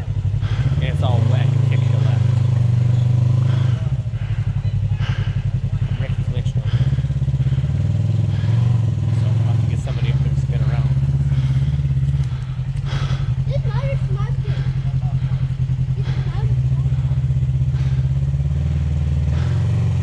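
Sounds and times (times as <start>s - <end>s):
vehicle engine droning: 0.0s - 20.0s.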